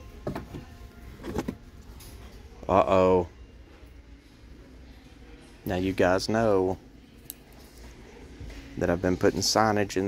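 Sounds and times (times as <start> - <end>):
wooden plaques knocking and scraping: 0.2 - 1.6.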